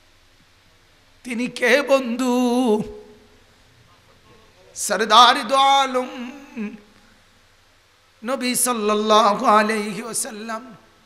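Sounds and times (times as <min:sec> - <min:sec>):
man chanting sermon: 0:01.2 - 0:03.2, 0:03.8 - 0:06.8, 0:08.2 - 0:10.9.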